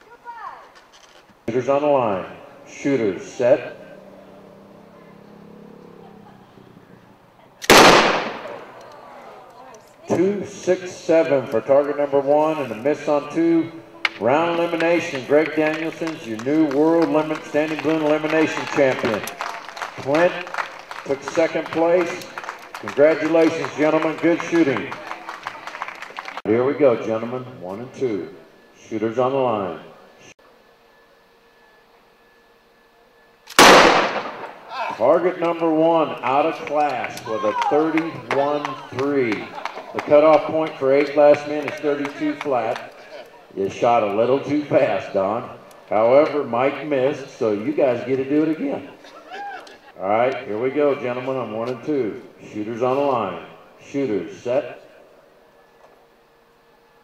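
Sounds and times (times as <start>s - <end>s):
revolver gunshot: 7.6s - 8.8s, 33.5s - 34.7s.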